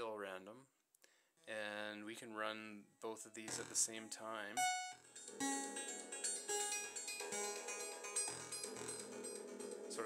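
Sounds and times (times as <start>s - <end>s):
pitched synthesizer notes: 4.6s - 9.6s.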